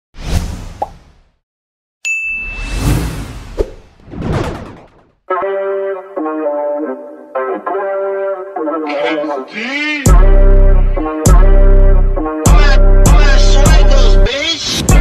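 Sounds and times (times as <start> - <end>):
short high ding: 2.0 - 2.8
whooshes: 2.5 - 4.8.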